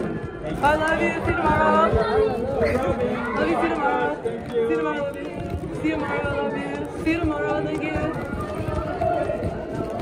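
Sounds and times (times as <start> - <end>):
dense noisy background: 0.0 - 10.0
indistinct voices: 0.0 - 10.0.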